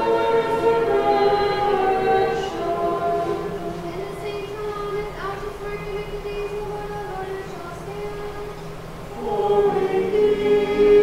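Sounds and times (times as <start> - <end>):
liturgical chant on one tone: 0.0 - 8.5, 9.1 - 11.0.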